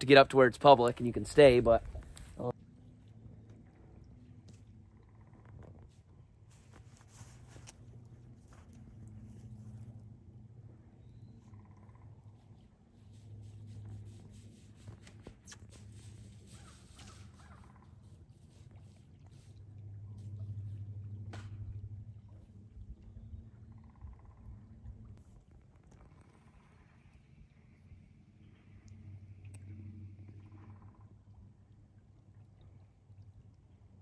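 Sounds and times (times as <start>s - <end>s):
low hum: 0.3s - 34.0s.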